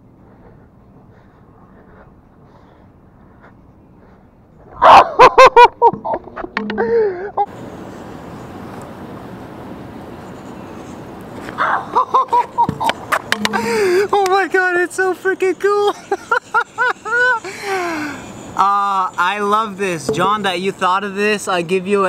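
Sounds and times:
young man laughing: 0:04.8 - 0:07.5, 0:11.6 - 0:14.4, 0:15.6 - 0:18.3
scooter wheel rolling on asphalt: 0:10.2 - 0:15.9.

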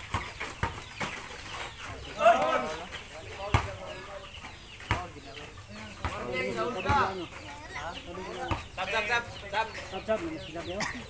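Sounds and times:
basketball bouncing on dirt: 0:00.0 - 0:07.5, 0:08.3 - 0:10.7
clucking calls: 0:00.0 - 0:11.0
voices: 0:00.0 - 0:11.0.

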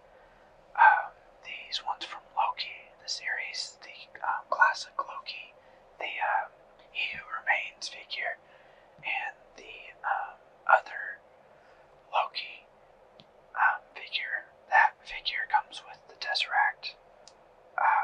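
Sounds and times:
person whispering: 0:00.8 - 0:08.4, 0:09.0 - 0:11.2, 0:12.1 - 0:12.7, 0:13.6 - 0:17.0, 0:17.8 - 0:18.0.

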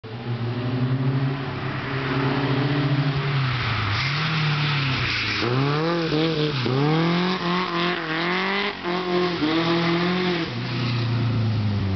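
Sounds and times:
car engine at high revs: 0:00.0 - 0:11.9.

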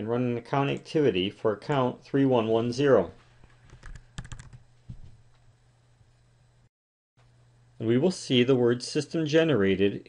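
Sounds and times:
keyboard typing: 0:03.7 - 0:04.6.

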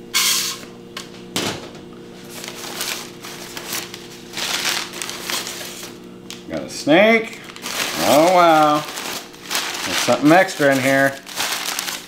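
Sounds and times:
packing paper rustling and crinkling: 0:02.2 - 0:06.5, 0:07.2 - 0:12.0.

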